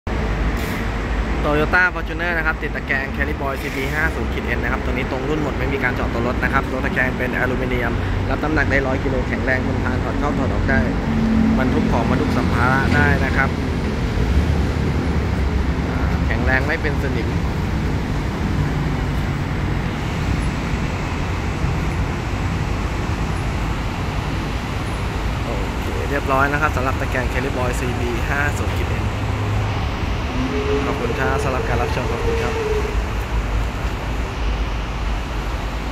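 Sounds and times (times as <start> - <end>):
road traffic rumble: 0.1 - 35.9
man speaking: 1.5 - 13.6, 15.9 - 17.5, 25.4 - 29.2, 30.4 - 33.0.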